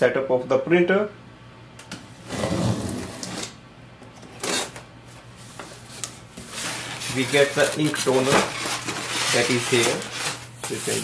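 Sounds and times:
cardboard box and foam rustling: 5.4 - 11.0.

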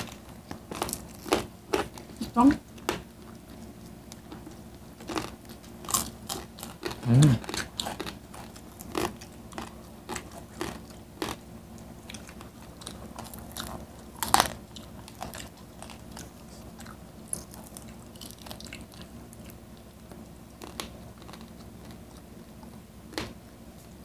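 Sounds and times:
crunchy chewing of fried food: 0.0 - 24.0.

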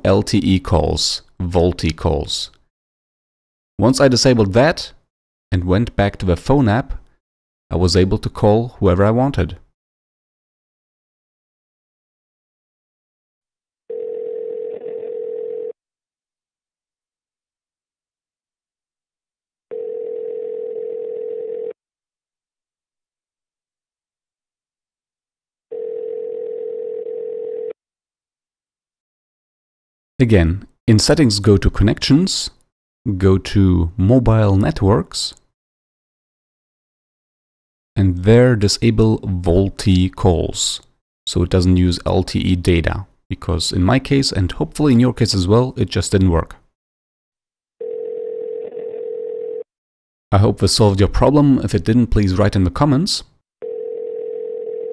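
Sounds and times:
telephone call-progress tone: 13.9 - 15.8, 19.7 - 21.8, 25.7 - 27.8, 47.8 - 49.7, 53.6 - 54.9.

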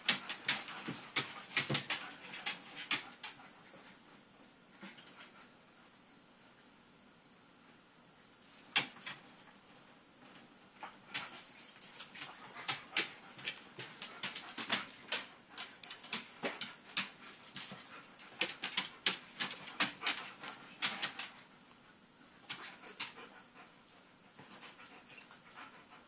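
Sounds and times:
puppy claws clicking and tapping: 0.0 - 3.4, 8.7 - 9.2, 11.1 - 21.4, 22.5 - 23.3.

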